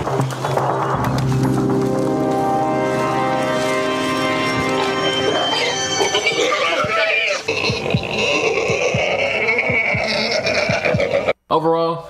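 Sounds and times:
background music with drum hits: 0:00.9 - 0:06.0, 0:06.8 - 0:11.1
pig squealing: 0:04.8 - 0:11.4.

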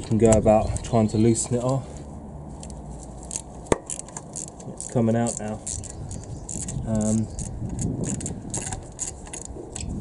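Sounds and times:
ratchet metallic clicks: 0:02.6 - 0:09.9.

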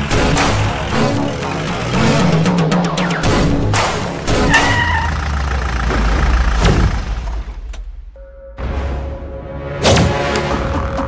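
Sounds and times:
car engine running: 0:00.0 - 0:08.1.

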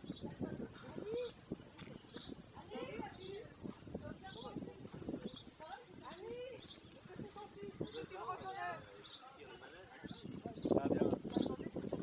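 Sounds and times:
faint people talking: 0:00.0 - 0:12.0.

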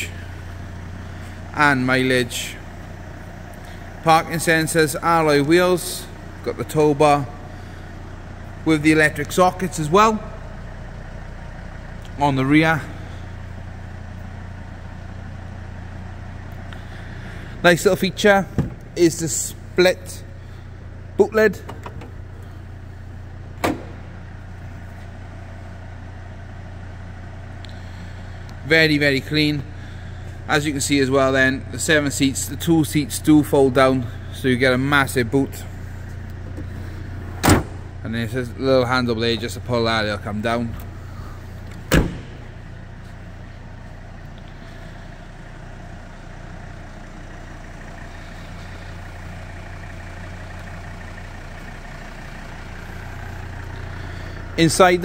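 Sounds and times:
diesel engine idling: 0:00.0 - 0:55.0
steady low hum: 0:00.0 - 0:55.0
car tailgate knock: 0:18.5 - 0:18.8, 0:23.6 - 0:24.0, 0:37.4 - 0:37.8, 0:41.9 - 0:42.5
seat release clunk: 0:18.5 - 0:18.9, 0:21.6 - 0:22.2, 0:23.6 - 0:24.2, 0:36.4 - 0:37.9, 0:41.7 - 0:42.6.

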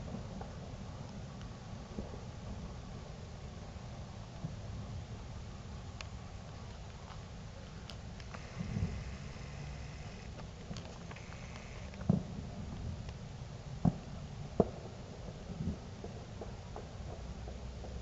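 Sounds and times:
steady background hum: 0:00.0 - 0:18.0
distant fireworks bangs: 0:08.2 - 0:13.0, 0:13.8 - 0:18.0.

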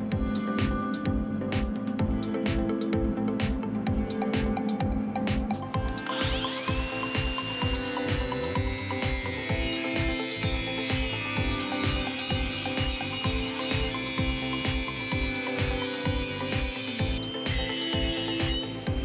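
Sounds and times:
background music with steady beat: 0:00.0 - 0:19.0
angle grinder grinding steel: 0:05.9 - 0:19.0.

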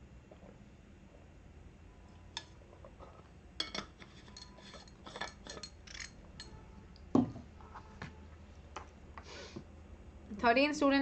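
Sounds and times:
bottle thump on desk: 0:07.1 - 0:07.4.

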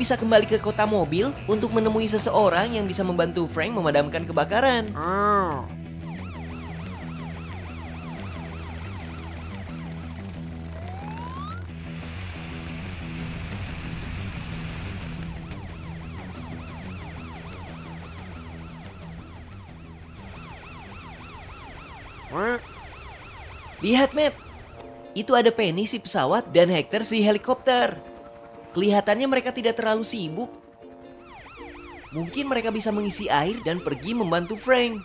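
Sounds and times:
cartoon police siren wailing: 0:00.0 - 0:11.8, 0:15.3 - 0:24.9, 0:29.8 - 0:35.0
background music: 0:00.0 - 0:35.0
rush of noise: 0:11.7 - 0:15.6.

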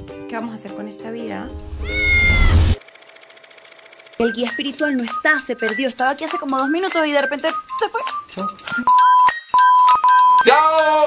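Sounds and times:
cat meowing: 0:01.8 - 0:02.8
fast even ticking: 0:02.9 - 0:11.0.

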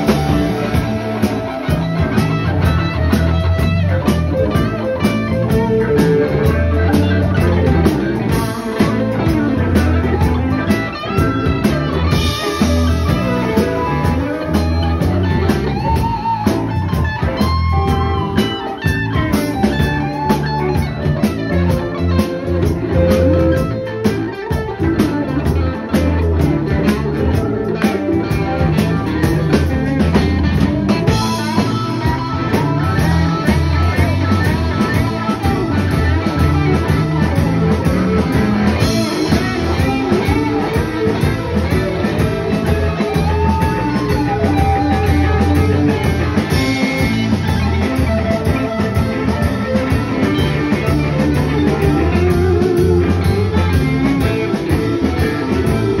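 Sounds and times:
bass: 0:00.0 - 0:56.0
drums: 0:00.0 - 0:56.0
electric guitar: 0:00.0 - 0:56.0
keyboards: 0:00.0 - 0:56.0.

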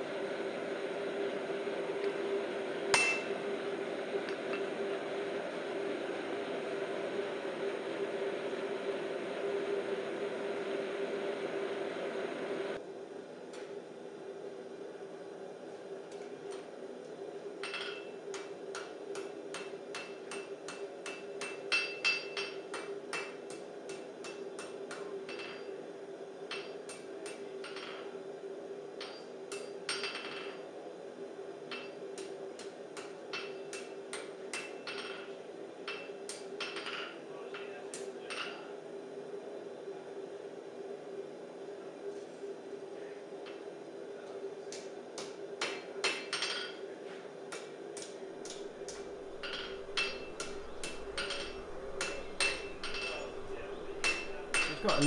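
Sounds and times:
steady hum: 0:00.0 - 0:36.8, 0:47.3 - 0:55.0
hammer striking steel on anvil: 0:02.9 - 0:03.4, 0:17.6 - 0:25.7, 0:26.5 - 0:28.1, 0:29.0 - 0:30.6, 0:31.7 - 0:38.6, 0:45.2 - 0:46.8, 0:47.5 - 0:55.0.

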